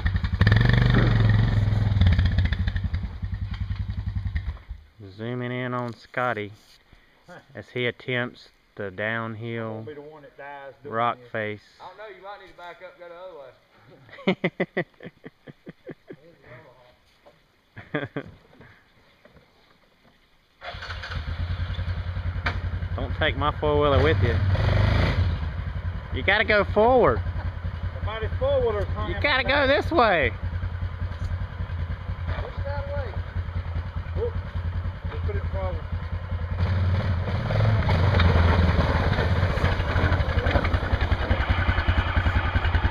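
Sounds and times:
quad bike engine: 0:00.0 - 0:04.8, 0:20.6 - 0:42.9
engine starting and idling: 0:20.6 - 0:22.6, 0:37.9 - 0:42.9.

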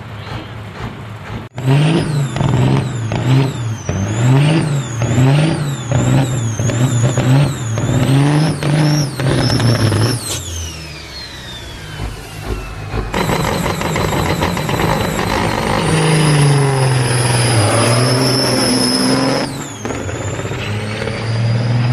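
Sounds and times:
diesel truck engine revving: 0:00.0 - 0:21.9
high steady whistle: 0:08.7 - 0:21.9.

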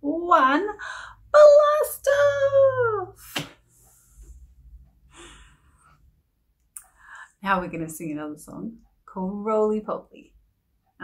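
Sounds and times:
woman breathing softly: 0:03.8 - 0:06.1, 0:06.9 - 0:07.4.

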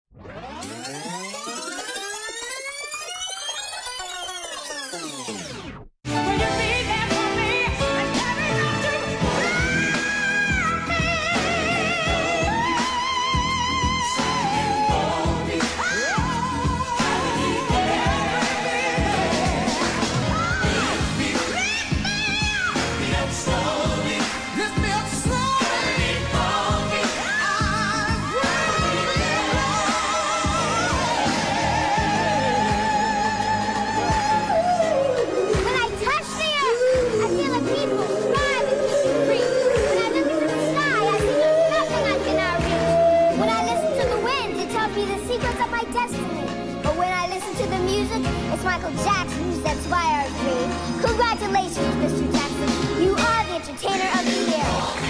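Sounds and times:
electronic siren-like tone: 0:00.1 - 0:05.9
steady drum beat: 0:10.5 - 0:33.3.

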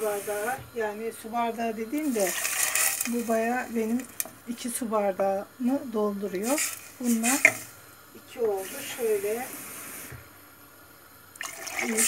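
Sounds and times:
water pouring into a pot: 0:02.0 - 0:04.5, 0:06.4 - 0:07.8, 0:11.3 - 0:12.0.

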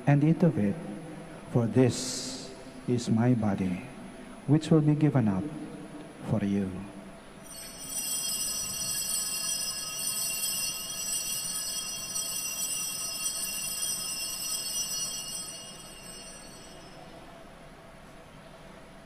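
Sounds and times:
bells ringing: 0:07.4 - 0:17.4.

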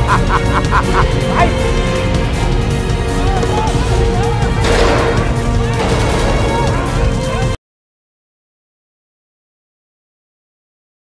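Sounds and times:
man laughing loudly: 0:00.0 - 0:02.0
background music: 0:00.0 - 0:07.6.

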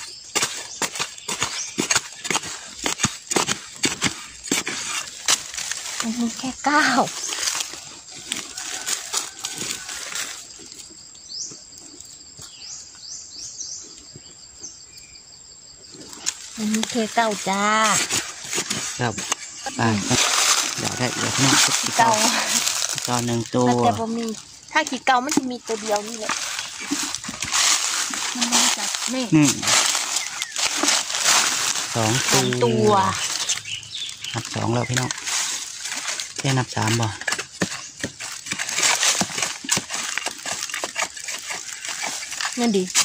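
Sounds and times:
bird chirping: 0:00.0 - 0:09.8, 0:10.4 - 0:38.9
hand digging in stony soil: 0:00.0 - 0:10.6, 0:16.2 - 0:43.0.

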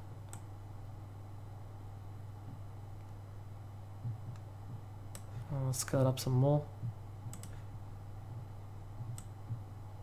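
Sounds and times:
steady low hum: 0:00.0 - 0:10.0
computer mouse click: 0:00.3 - 0:00.5, 0:05.1 - 0:05.3, 0:07.3 - 0:07.6, 0:09.0 - 0:09.6.

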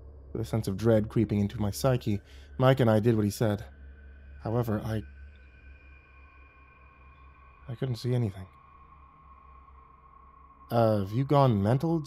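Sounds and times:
ambient drone with high tones: 0:00.0 - 0:12.0.

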